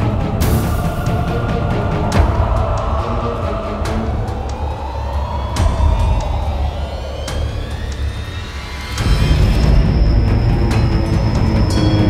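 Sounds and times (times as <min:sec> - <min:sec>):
low rumbling drone: 0:00.0 - 0:12.0
rising siren-like tones: 0:02.6 - 0:11.6.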